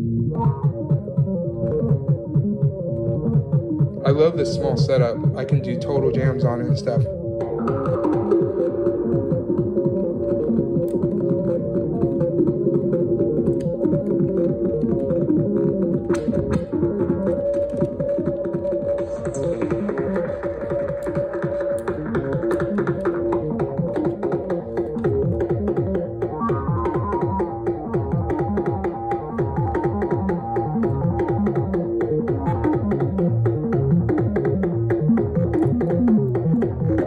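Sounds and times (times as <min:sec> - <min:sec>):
synthesizer drum voices: 0:00.0 - 0:37.0.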